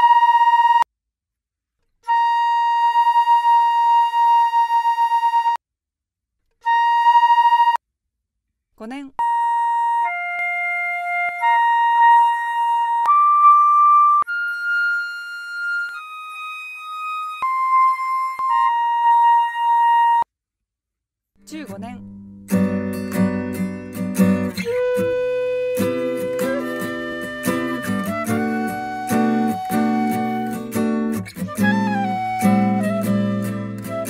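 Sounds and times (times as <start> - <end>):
flute holding a tuning note: 0.0 - 0.9, 2.1 - 5.6, 6.6 - 7.8, 9.2 - 20.3, 24.4 - 34.0.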